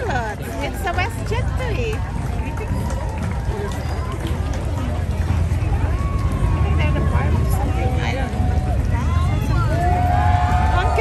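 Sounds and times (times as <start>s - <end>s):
chatter of onlookers: 0.0s - 11.0s
steady low rumble: 0.0s - 11.0s.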